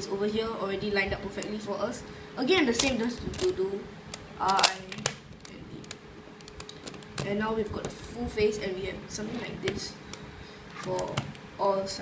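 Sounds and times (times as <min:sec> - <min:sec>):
puzzle cube clicking and rattling: 0:02.8 - 0:07.4.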